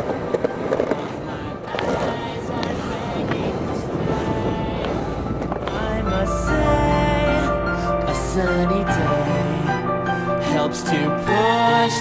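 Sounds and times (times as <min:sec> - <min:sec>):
skateboard wheels rolling on pavement: 0:00.0 - 0:07.6
song music: 0:00.1 - 0:12.0.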